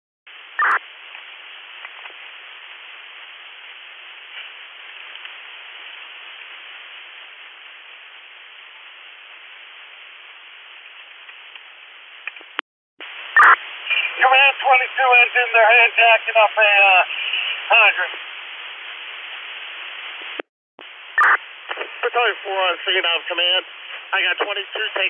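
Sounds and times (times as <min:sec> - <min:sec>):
radio static hiss: 0:00.3 - 0:25.0.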